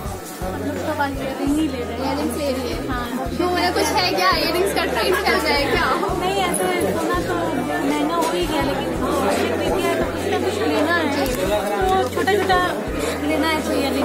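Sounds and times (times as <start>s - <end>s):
background music: 0.0s - 14.0s
people chattering: 0.0s - 14.0s.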